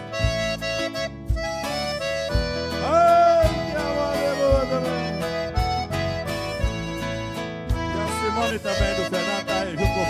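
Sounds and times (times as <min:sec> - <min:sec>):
guitar: 0:00.0 - 0:10.0
held accordion chords: 0:00.0 - 0:10.0
low beat: 0:00.0 - 0:10.0.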